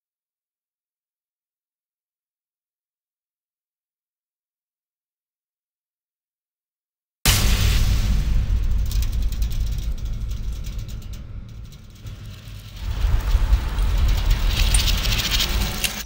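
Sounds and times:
deep rumbling drone: 7.3s - 16.0s
fast mechanical ticking: 9.1s - 16.0s.

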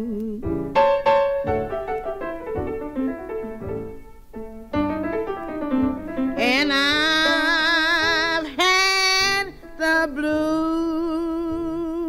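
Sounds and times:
woman singing blues: 0.0s - 0.8s, 6.3s - 12.0s.

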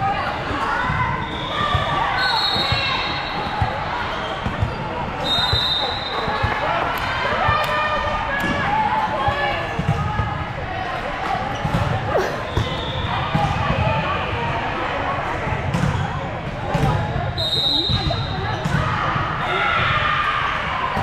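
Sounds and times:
people calling out in gym: 0.0s - 21.0s
high whistle blasts: 1.2s - 3.5s, 5.2s - 6.3s, 17.4s - 18.3s
volleyball hits: 17.8s - 19.9s.

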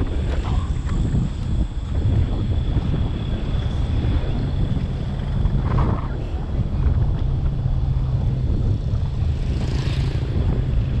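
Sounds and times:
car road noise: 0.0s - 11.0s
wind buffeting microphone: 0.0s - 11.0s.

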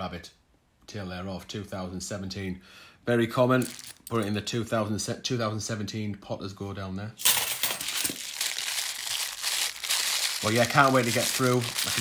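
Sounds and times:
plastic bag crinkling: 3.6s - 4.1s, 7.3s - 12.0s.

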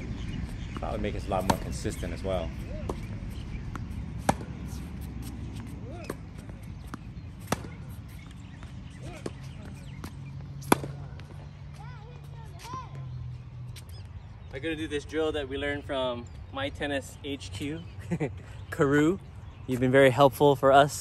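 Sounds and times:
racket hitting tennis ball: 0.7s - 1.9s, 2.5s - 11.8s.

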